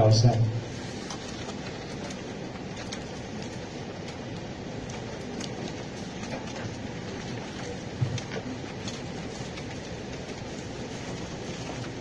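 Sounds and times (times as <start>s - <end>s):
background rumble and hiss: 0.0s - 12.0s.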